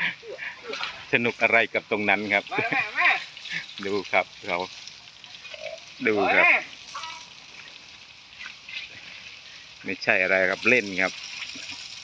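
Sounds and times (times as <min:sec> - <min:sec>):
garden hose spraying water: 0:00.0 - 0:12.0
water pattering on mud: 0:00.0 - 0:12.0.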